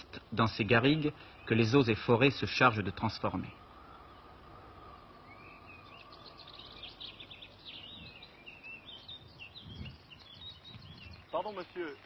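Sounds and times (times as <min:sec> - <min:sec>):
small birds chirping: 0:00.0 - 0:12.0
steady background hiss: 0:00.0 - 0:12.0.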